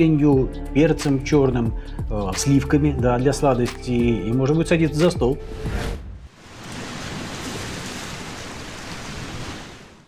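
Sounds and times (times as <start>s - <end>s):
sea surf washing on shore: 6.3s - 10.0s.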